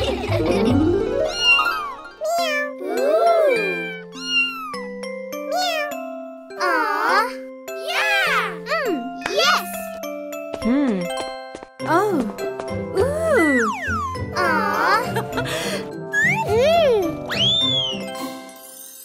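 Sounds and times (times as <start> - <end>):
light children's music: 0.0 - 19.0
cartoon kittens meowing: 1.3 - 4.8, 5.5 - 6.0.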